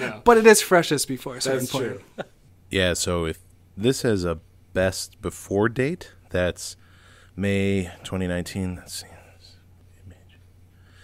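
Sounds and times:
steady low hum: 0.0 - 11.0
soft whispering voice: 8.6 - 10.5.

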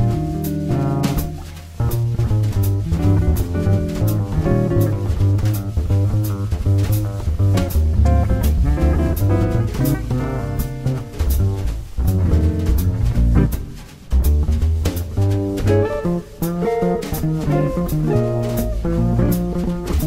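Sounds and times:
double bass line: 0.0 - 20.0
drum kit cymbal strokes: 0.0 - 20.0
guitar: 0.0 - 20.0.

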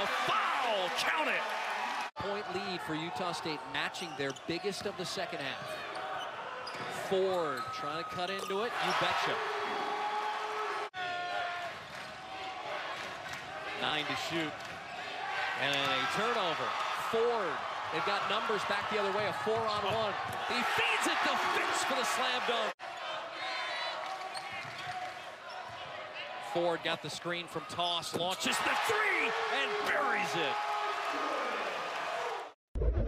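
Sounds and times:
murmur of arena crowd: 0.0 - 32.6.

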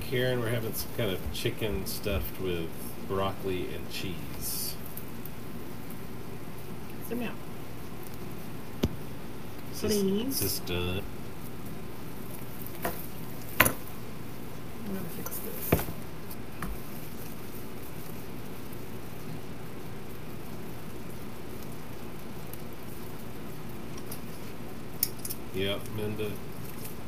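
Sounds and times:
steady hiss: 0.0 - 27.0
knocks and clicks of handled materials: 12.8 - 13.9.

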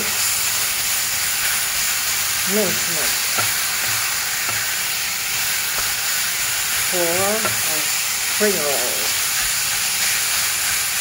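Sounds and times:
meat sizzling in a pan: 0.0 - 11.0.

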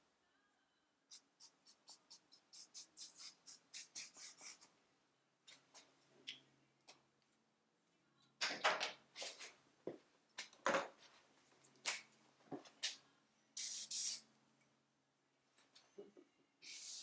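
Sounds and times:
marker writing on paper: 1.1 - 4.7.

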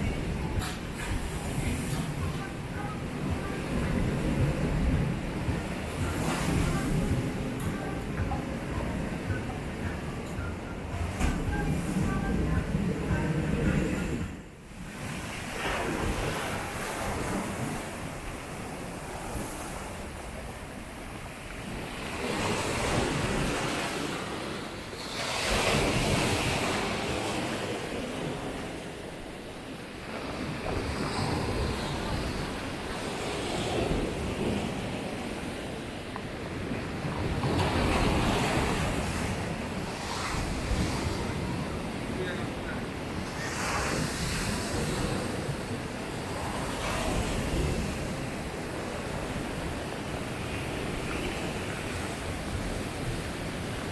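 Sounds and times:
wind on microphone: 0.0 - 53.9.

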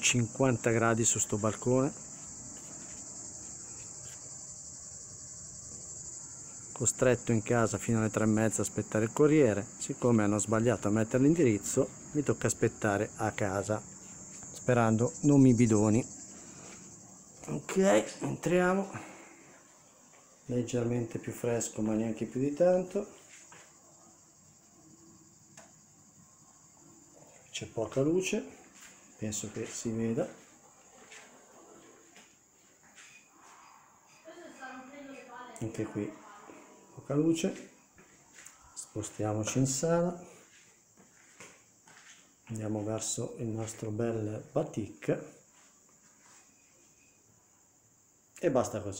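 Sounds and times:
insects singing: 0.0 - 31.2, 31.8 - 48.9
faint steady hiss: 0.0 - 48.9.

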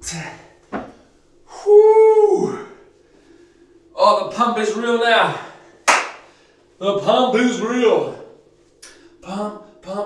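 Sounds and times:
man shouting: 1.6 - 2.7.

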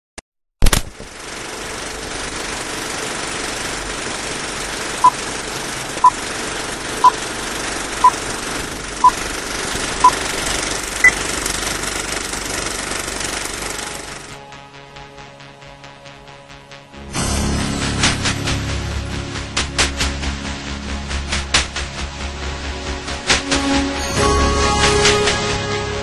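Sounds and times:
film projector rattle and hiss: 0.7 - 14.4.

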